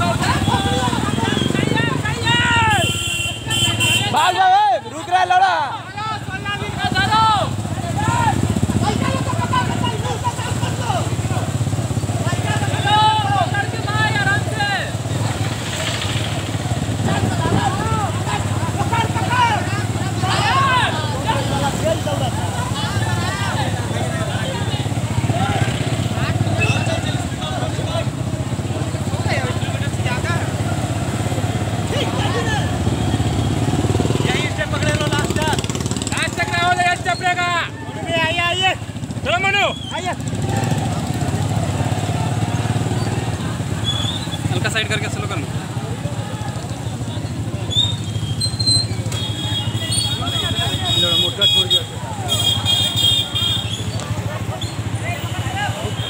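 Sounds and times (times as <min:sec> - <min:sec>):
people's voices calling: 0:00.0 - 0:56.0
vehicle engine rumbling: 0:00.0 - 0:56.0.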